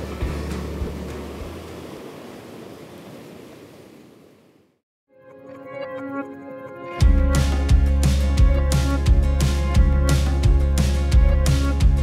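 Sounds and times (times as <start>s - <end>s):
ocean surf washing in: 0.0s - 4.6s.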